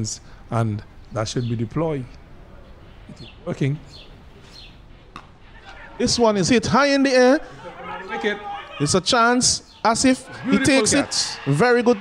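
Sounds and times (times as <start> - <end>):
faint background noise: 0.0 - 12.0
cricket bat striking ball: 5.1 - 6.2.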